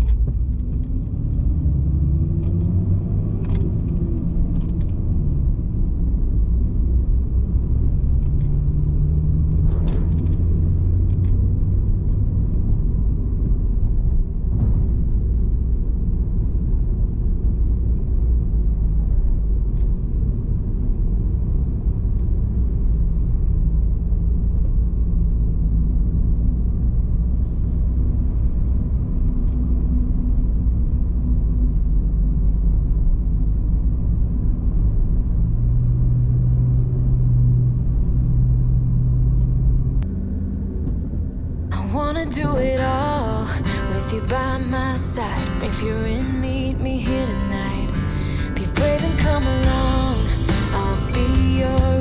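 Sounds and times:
car road and engine rumble: 0.0 - 52.0.

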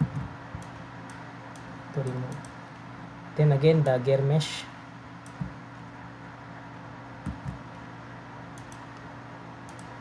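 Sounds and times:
low electrical hum: 0.0 - 10.0
computer mouse clicks: 0.1 - 2.6, 5.2 - 5.6, 8.5 - 10.0.

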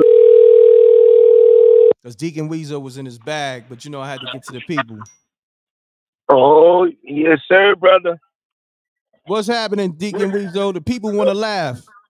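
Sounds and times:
telephone ringback tone: 0.0 - 2.0.

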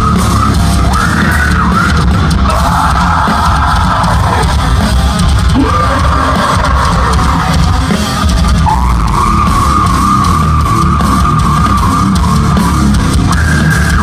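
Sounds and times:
drums: 0.0 - 14.0
heavy guitars: 0.0 - 14.0
yelled vocals: 0.0 - 14.0.

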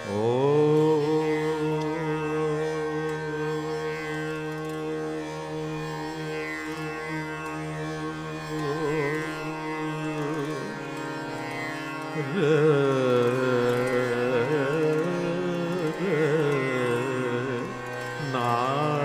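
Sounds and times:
man singing long note: 0.0 - 10.8, 12.2 - 19.0
harmonium: 0.0 - 19.0
tanpura drone: 0.0 - 19.0.

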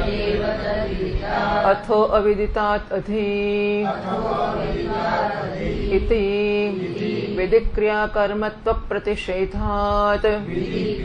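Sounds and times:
group of voices chanting: 0.0 - 1.8, 3.9 - 6.1, 6.7 - 7.4, 10.4 - 11.0
person reciting: 0.0 - 11.0.

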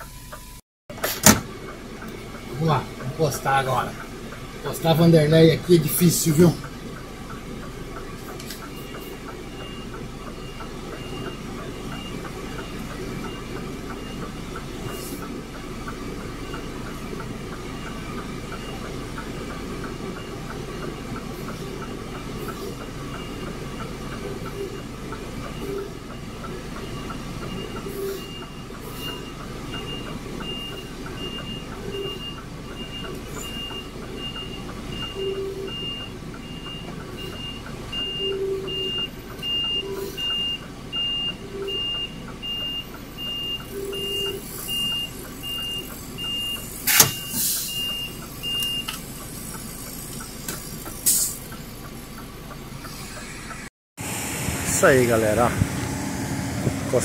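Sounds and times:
truck reversing alarm beeps: 0.0 - 0.6, 1.3 - 57.0
truck engine running: 0.0 - 57.0.

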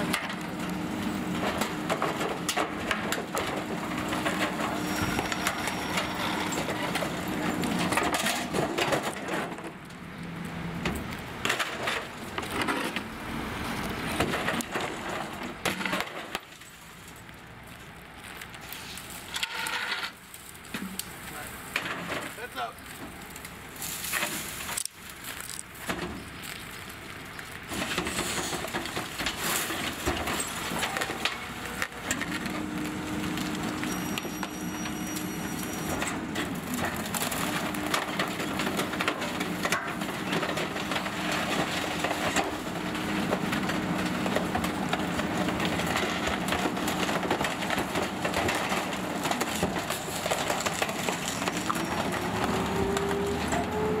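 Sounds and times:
wood waste cracking and splintering: 0.0 - 54.0
truck engine pulling away: 29.4 - 54.0.

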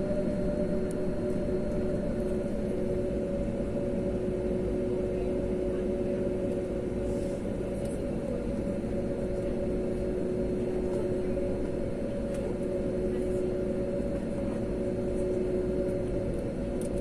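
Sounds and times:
jet engines rumbling: 0.0 - 17.0.

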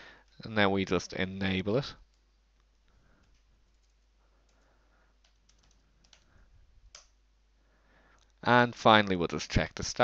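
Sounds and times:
computer keyboard typing: 2.1 - 7.2.

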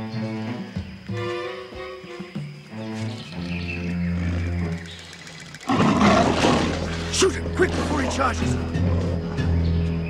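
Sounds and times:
dramatic music with low notes: 0.0 - 10.0
lion roaring: 5.6 - 9.2.

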